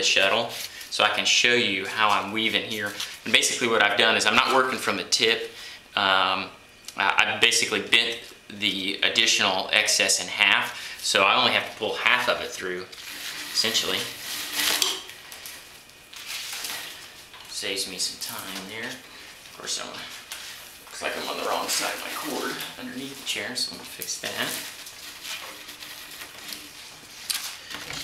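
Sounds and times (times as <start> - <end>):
paper cord rubbing through woven seat: 12.9 - 14.8, 21.0 - 27.4.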